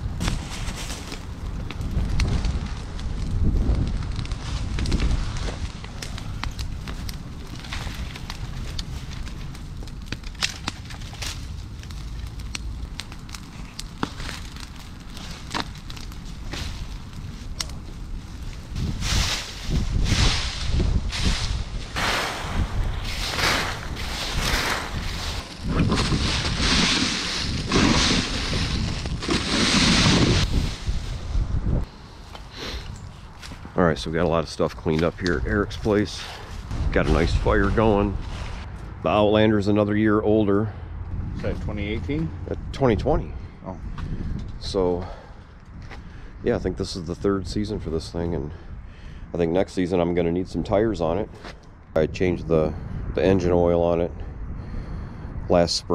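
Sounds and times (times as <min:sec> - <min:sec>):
rustling and crunching: 0:00.0 - 0:39.0
brush fire crackling and popping: 0:00.0 - 0:55.9
wind rumbling on microphone: 0:00.0 - 0:55.9.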